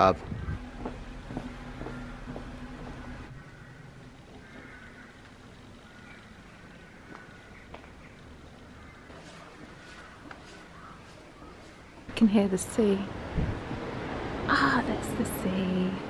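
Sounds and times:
faint footsteps: 0:00.0 - 0:06.0, 0:06.9 - 0:12.2
vehicle engine running: 0:00.0 - 0:08.9
street ambience: 0:00.0 - 0:16.0.

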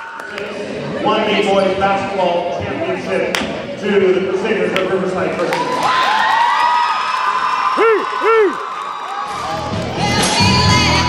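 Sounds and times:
crowd cheering and applauding: 0:05.4 - 0:11.0
whoops: 0:05.6 - 0:09.4.

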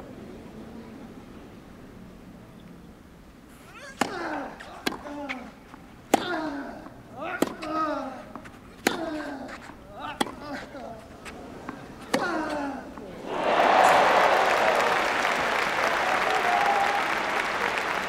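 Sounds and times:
racket striking tennis ball: 0:04.0 - 0:05.4, 0:06.1 - 0:06.4, 0:07.3 - 0:09.2, 0:10.0 - 0:10.6, 0:11.6 - 0:12.6.

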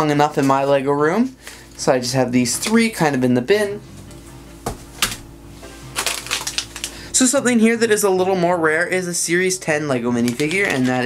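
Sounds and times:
quiet background music: 0:00.0 - 0:11.0
foil bag clicks and crinkles: 0:05.9 - 0:07.0, 0:10.1 - 0:11.0.

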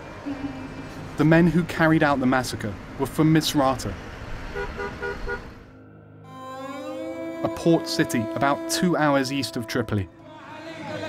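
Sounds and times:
road traffic: 0:00.0 - 0:05.9
car horn short beeps: 0:04.6 - 0:05.4.

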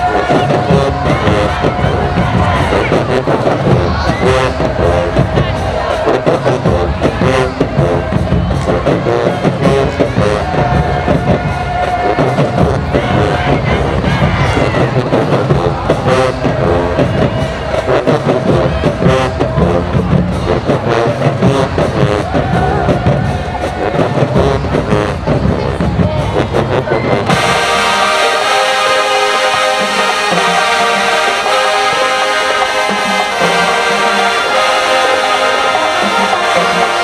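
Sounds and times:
crowd noise: 0:00.0 - 0:37.0
marching band playing: 0:00.0 - 0:37.0
smooth held chords: 0:27.3 - 0:37.0.

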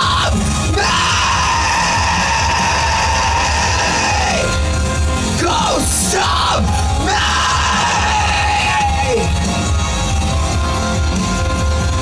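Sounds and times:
yelled vocal cries: 0:00.0 - 0:04.7, 0:05.4 - 0:09.4
heavy bass: 0:00.0 - 0:12.0
loud rock music: 0:00.0 - 0:12.0.

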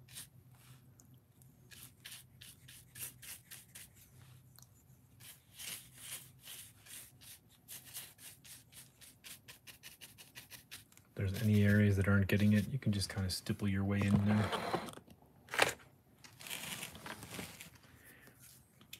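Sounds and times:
paintbrush scrubbing foam: 0:00.0 - 0:00.8, 0:01.6 - 0:13.0.

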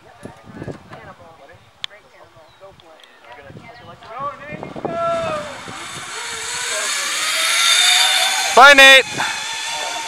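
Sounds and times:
zip line trolley whirring: 0:04.3 - 0:10.0.

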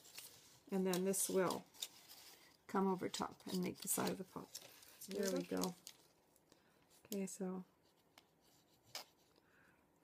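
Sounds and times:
faint handling sounds: 0:00.0 - 0:09.9.

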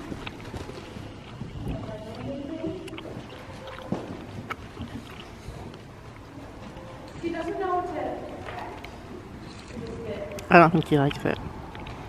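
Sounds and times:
horse hooves on sand: 0:00.0 - 0:10.3.

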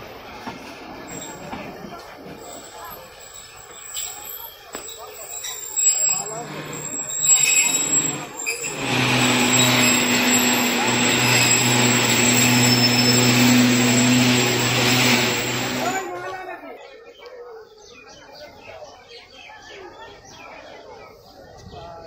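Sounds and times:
passengers' voices: 0:00.0 - 0:13.3, 0:15.6 - 0:22.0
train humming and hissing: 0:00.0 - 0:16.2.

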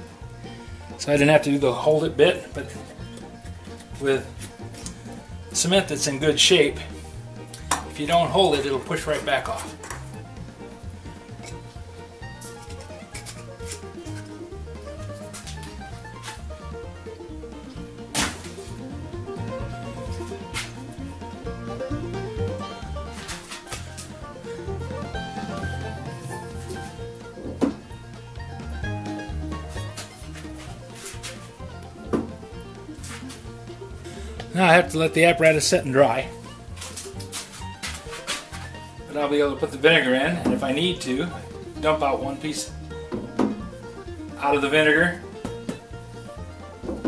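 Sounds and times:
background music with bass line: 0:00.0 - 0:47.0
sharp knocks: 0:43.1 - 0:43.7.

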